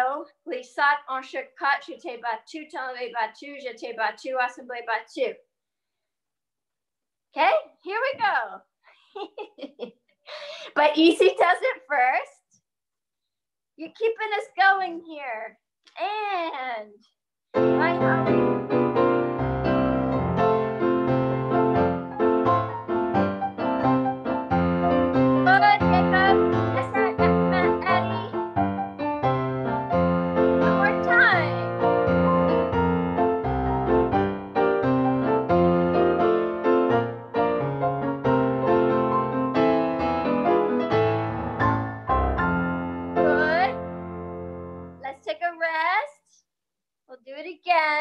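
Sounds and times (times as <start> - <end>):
rhythmic piano accompaniment: 17.6 - 45.0.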